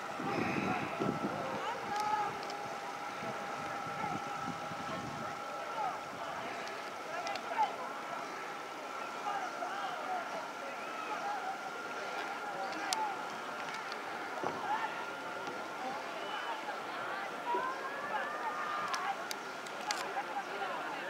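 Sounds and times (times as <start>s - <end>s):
distant voices calling out: 0.0s - 21.0s
faint steady whine: 0.0s - 21.0s.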